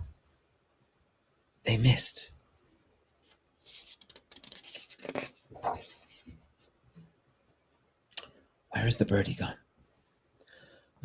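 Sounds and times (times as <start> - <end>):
book pages rustling: 3.1 - 6.8.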